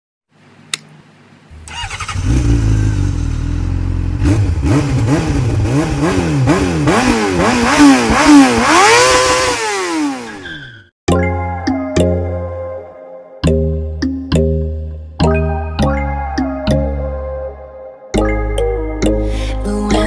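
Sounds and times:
click: 0.7 - 0.9
engine starting and revving: 1.5 - 10.6.

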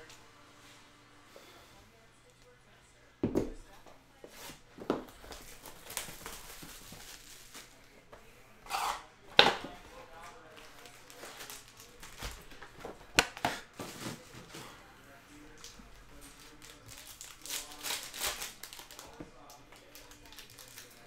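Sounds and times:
foil packs handled: 5.1 - 7.8, 10.1 - 14.8, 15.6 - 21.0
plastic wrap crinkling and tearing: 5.2 - 7.8, 9.6 - 14.2, 15.6 - 21.0.

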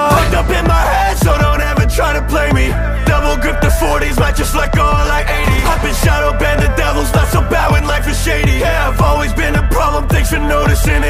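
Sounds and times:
heavy sustained bass: 0.0 - 11.0
rapping over a beat: 0.0 - 11.0
kick drum sweeping down: 4.2 - 7.9.

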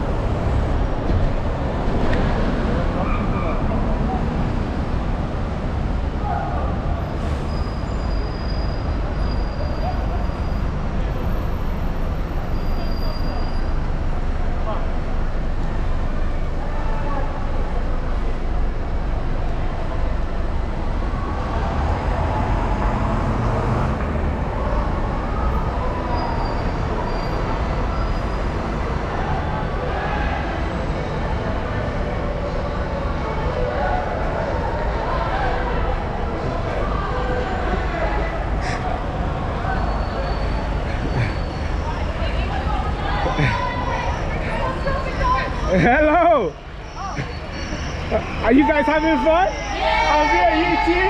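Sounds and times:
buses and cars passing: 0.0 - 51.0
indistinct voices of passersby: 0.0 - 51.0.

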